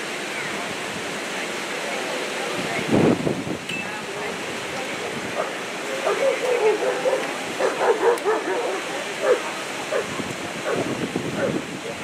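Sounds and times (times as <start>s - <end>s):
dog barking and yipping: 5.4s - 11.6s.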